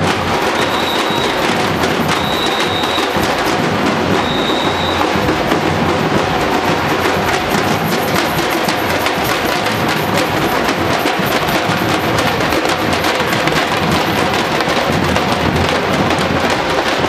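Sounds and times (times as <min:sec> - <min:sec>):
percussion band drumming: 0:00.0 - 0:17.0.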